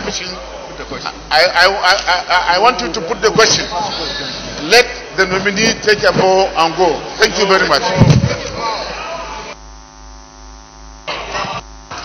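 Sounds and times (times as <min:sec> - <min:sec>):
electrical hum: 0:00.0 - 0:12.0
loud thump: 0:07.9 - 0:08.4.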